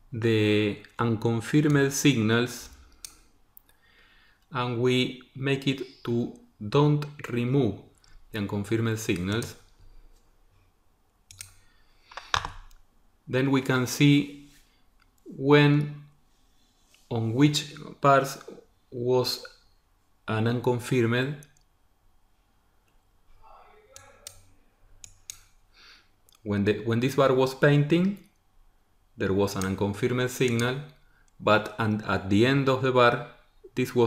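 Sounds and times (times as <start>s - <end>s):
soft breath: 3.7s - 4.5s
computer mouse clicks: 11.3s - 12.8s, 23.9s - 25.5s.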